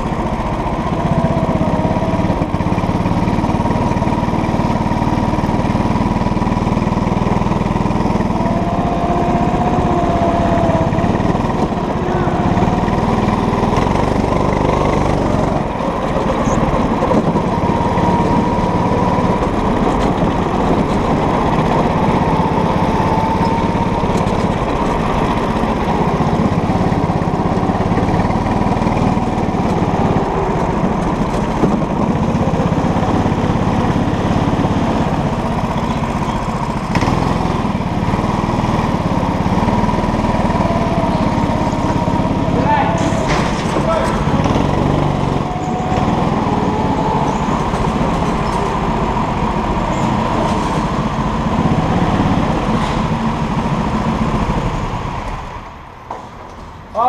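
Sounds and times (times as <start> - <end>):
go-kart engine running: 0.0 - 57.0.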